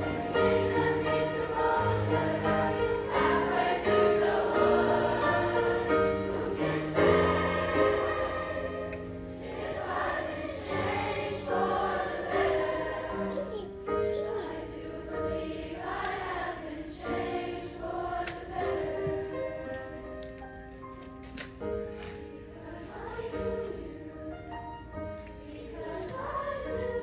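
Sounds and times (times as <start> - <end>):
mixed choir singing: 0.0 - 13.3, 14.5 - 20.1, 22.1 - 27.0.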